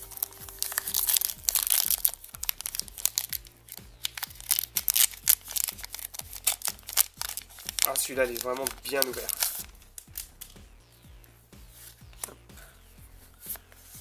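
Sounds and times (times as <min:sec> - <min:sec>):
foil wrapper tearing and crinkling: 0:00.0 - 0:10.5.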